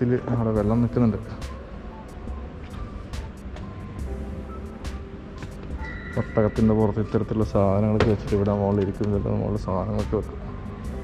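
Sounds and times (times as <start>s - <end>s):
man speaking: 0.0s - 1.4s, 6.2s - 10.4s
faint background music: 0.0s - 11.0s.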